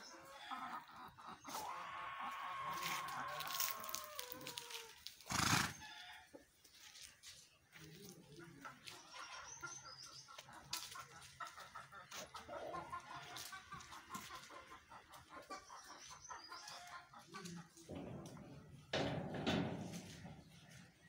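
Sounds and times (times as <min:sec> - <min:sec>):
chickens clucking: 0:00.0 - 0:05.2, 0:05.8 - 0:21.0.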